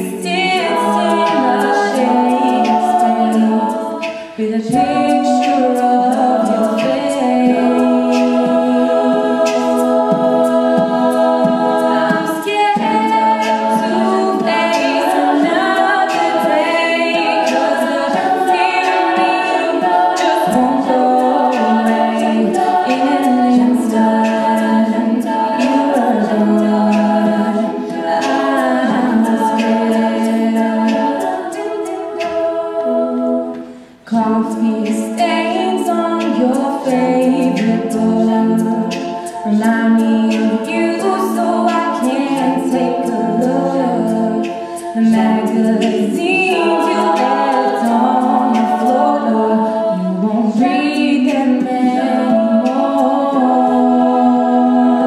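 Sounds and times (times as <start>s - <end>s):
female a cappella group singing: 0.0s - 55.0s
short sharp rhythmic hisses: 2.4s - 4.4s, 29.5s - 34.1s, 44.4s - 45.0s.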